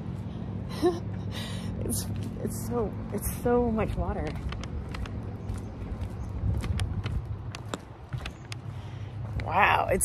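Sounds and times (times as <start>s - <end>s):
low steady rumble: 0.0s - 10.0s
footsteps on wooden dock: 2.0s - 10.0s.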